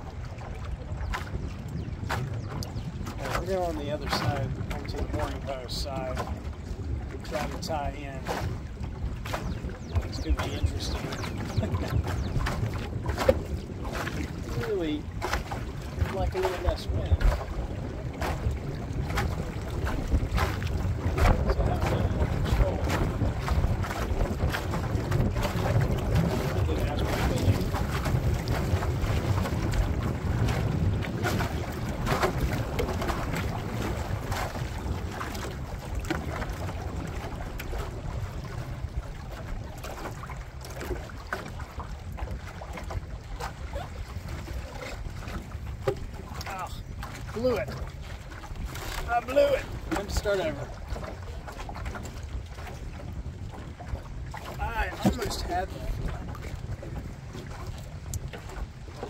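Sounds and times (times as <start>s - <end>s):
water slapping against boat hull: 0.0s - 59.0s
wind buffeting microphone: 0.0s - 59.0s.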